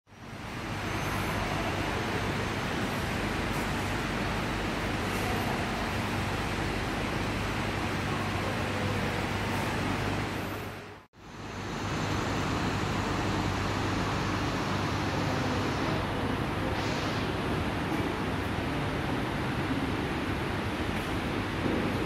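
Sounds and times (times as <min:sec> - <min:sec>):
rushing station hall noise: 0:00.1 - 0:22.0.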